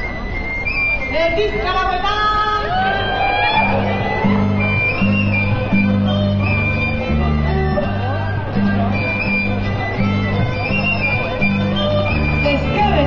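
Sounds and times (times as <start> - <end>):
live folk band playing dance music: 0.0 - 13.0
bass line: 2.6 - 13.0.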